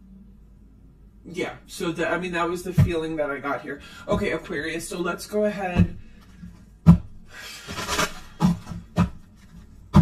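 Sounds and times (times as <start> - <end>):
cards rustling: 7.6 - 9.9.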